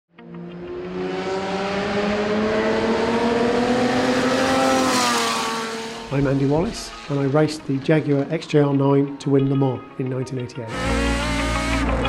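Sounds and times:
race car engine passing: 0.2 - 8.3.

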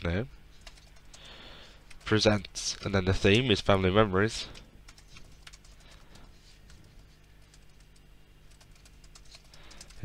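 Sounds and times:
faint keyboard typing: 0.6 - 3.7, 4.4 - 10.0.

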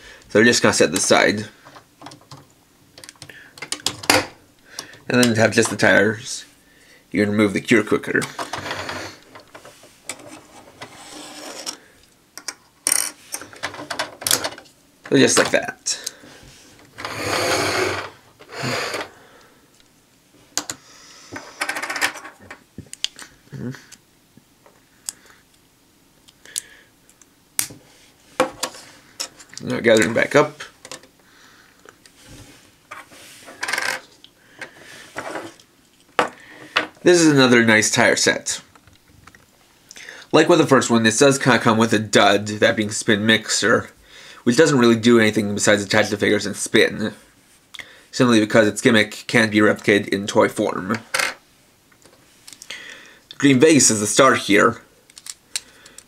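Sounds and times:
plastic rubbing scrape: 8.4 - 11.8, 16.5 - 19.2
plastic toy parts clicking: 55.1 - 56.0.

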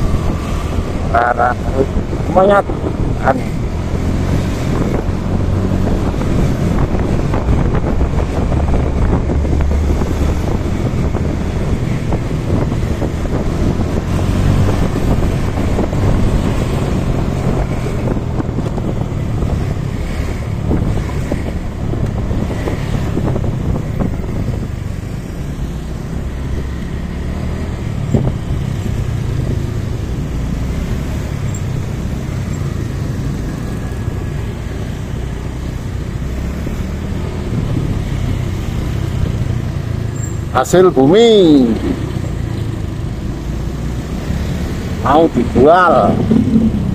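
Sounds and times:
road noise: 0.0 - 46.9
wind rushing over microphone: 0.0 - 46.9.

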